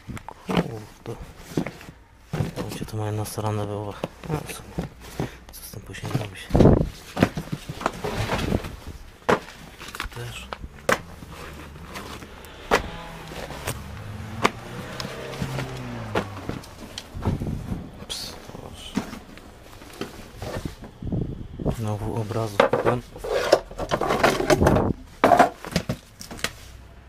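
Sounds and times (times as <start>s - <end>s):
paper magazines shuffled: 4.0s - 12.4s
dull thump: 10.7s - 17.9s.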